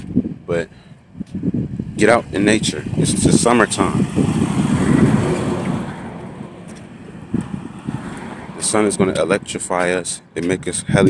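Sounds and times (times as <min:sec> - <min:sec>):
road vehicle passing: 0:01.5 - 0:10.8.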